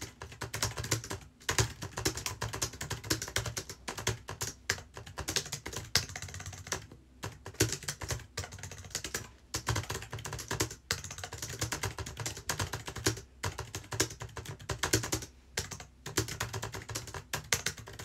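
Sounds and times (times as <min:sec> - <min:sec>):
fast typing on keyboard: 0:00.0 - 0:18.0.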